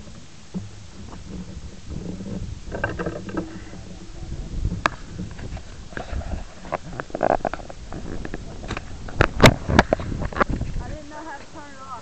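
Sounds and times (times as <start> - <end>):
hand rubbing camera body: 1.0 - 10.8.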